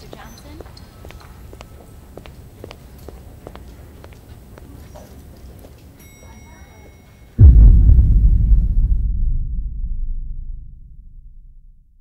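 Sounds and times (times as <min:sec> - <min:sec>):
footsteps on stone floor: 0:00.0 - 0:05.9
low steady rumble: 0:07.4 - 0:12.0.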